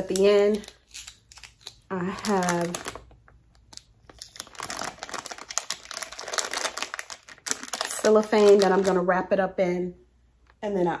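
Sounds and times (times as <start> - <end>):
cellophane crinkling: 0.0 - 9.1.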